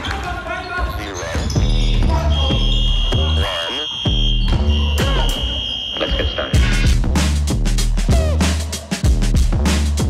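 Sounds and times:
music with steady beat: 1.6s - 10.0s.

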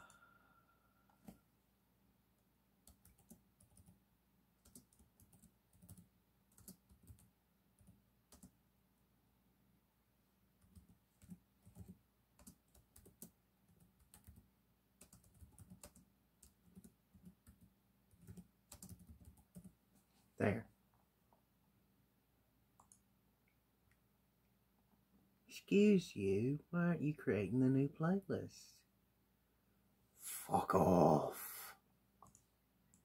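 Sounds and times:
faint computer keyboard typing: 2.8s - 4.0s, 4.6s - 8.6s, 10.6s - 19.8s, 22.8s - 23.1s.

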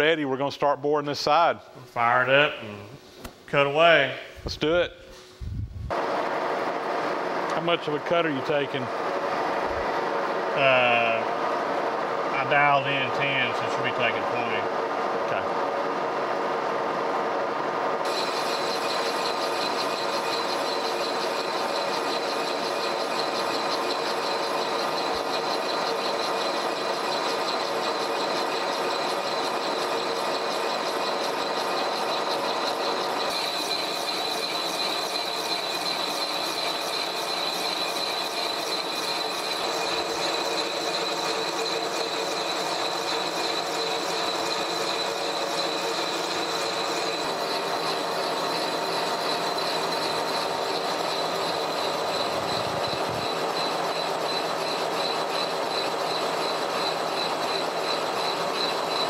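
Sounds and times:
boring mill machining hum: 5.1s - 59.0s.

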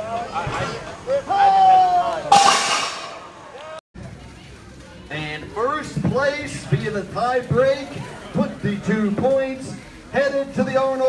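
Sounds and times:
metal implements crashing on pavement: 2.3s - 3.4s.

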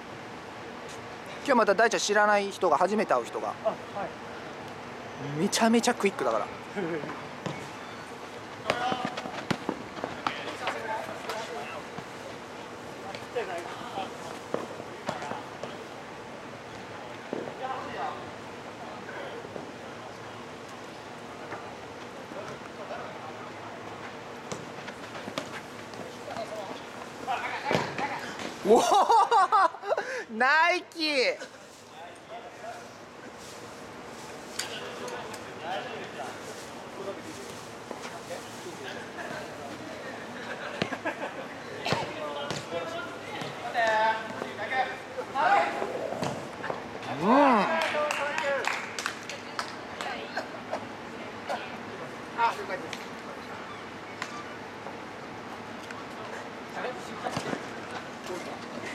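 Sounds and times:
person shouting oh: 47.1s - 47.7s.

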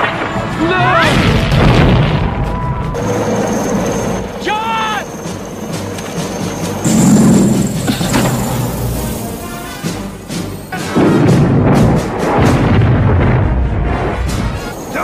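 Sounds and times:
film music score: 0.0s - 15.0s
loud booms: 6.9s - 9.0s, 11.0s - 14.5s.

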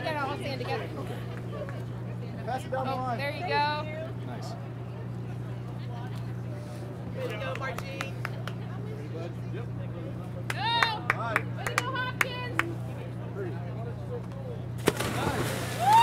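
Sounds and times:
steady low hum: 0.0s - 16.0s
loud water splash: 14.8s - 16.0s.

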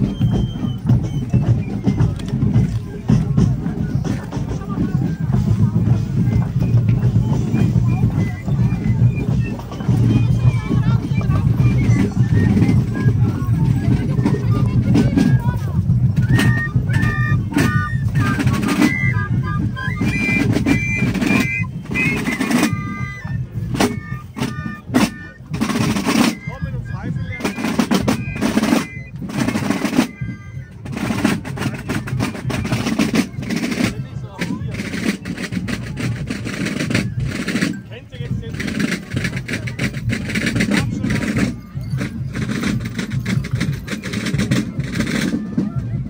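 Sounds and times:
high piped melody: 0.0s - 45.7s
marching drums: 0.0s - 46.0s.

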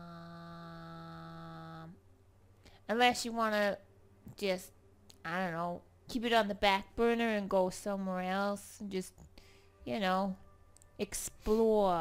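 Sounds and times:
steady humming tone: 0.0s - 8.5s.

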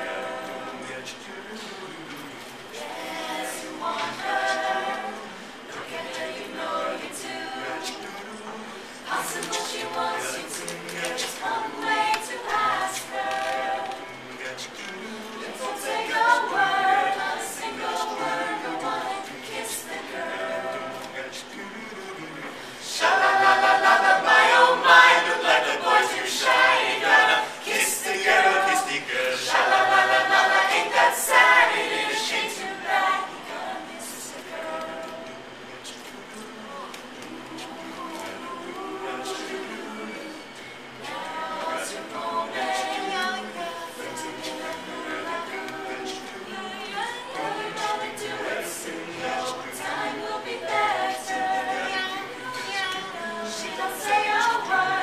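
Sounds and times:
a cappella group singing: 0.0s - 55.0s.

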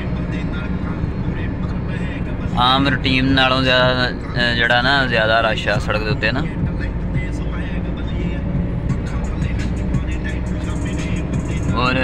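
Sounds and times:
car engine and tyre noise: 0.0s - 12.0s.

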